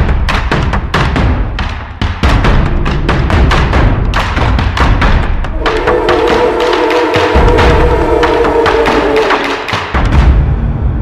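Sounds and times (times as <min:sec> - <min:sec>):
rapid heavy drum beats: 0:00.0 - 0:10.5
sustained held note: 0:05.5 - 0:09.9.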